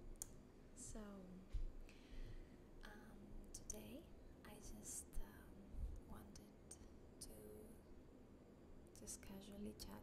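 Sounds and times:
woman whispering: 2.8s - 7.8s.

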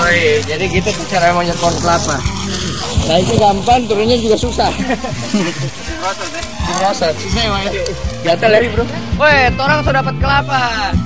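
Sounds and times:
background music with low bass: 0.0s - 11.0s
people talking: 0.0s - 11.0s.

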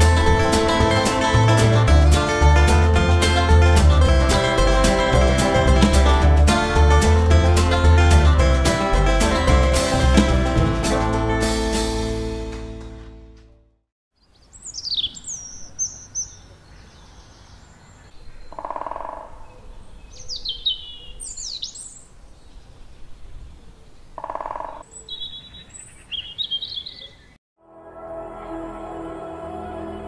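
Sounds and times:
music: 0.0s - 13.8s, 27.6s - 30.0s
soft outdoor background: 14.1s - 30.0s
songbirds chirping: 14.2s - 27.4s.

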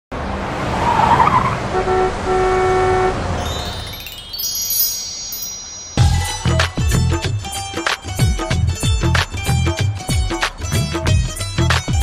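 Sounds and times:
road traffic rumble: 0.1s - 6.1s
car horn honking: 1.6s - 3.8s
shimmering chime: 3.4s - 7.1s.

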